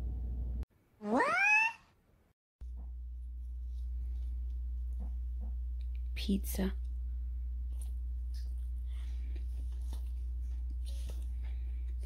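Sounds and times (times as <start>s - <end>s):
cat meowing: 1.0s - 1.9s
steady low hum: 2.6s - 12.0s.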